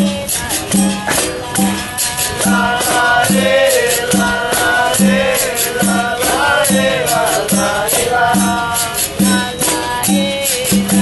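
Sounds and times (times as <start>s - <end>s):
shaking rattle: 0.0s - 11.0s
tambourine jingles: 0.0s - 11.0s
voices singing a chant: 0.0s - 11.0s.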